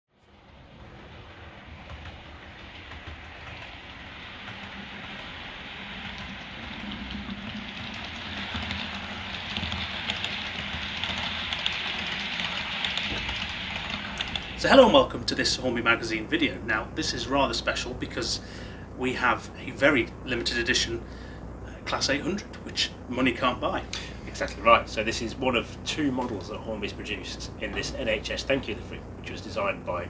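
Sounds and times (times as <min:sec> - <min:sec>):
low motor hum: 0:00.1 - 0:30.0.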